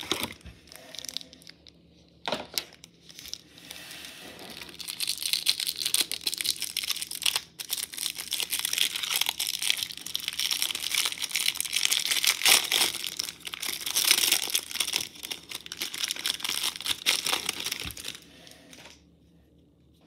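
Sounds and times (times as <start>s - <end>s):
plastic wrapper crinkling: 0.0s - 3.7s, 4.4s - 19.0s.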